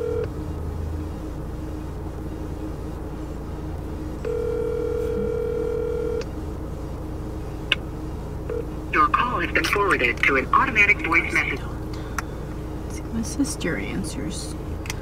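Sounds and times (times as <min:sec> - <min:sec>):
telephone ringback tone: 0:00.0 - 0:00.3, 0:04.3 - 0:06.2.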